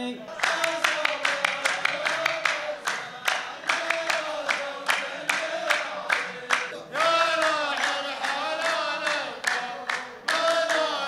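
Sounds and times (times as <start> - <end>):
men chanting in unison: 0.0 - 11.0
men clapping in rhythm: 0.3 - 11.0.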